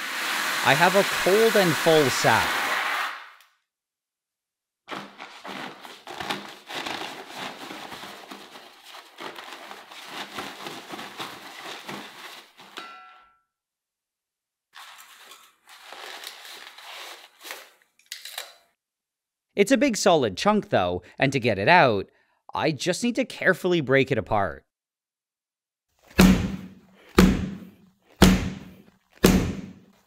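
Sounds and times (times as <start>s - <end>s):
frozen sack crinkling and crunching: 4.9s - 12.8s.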